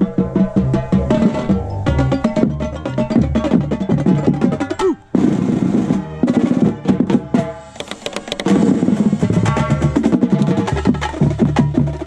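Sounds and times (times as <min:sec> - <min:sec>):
drum and bugle corps playing: 0:00.0 - 0:12.0
marching drums striking: 0:00.0 - 0:12.0.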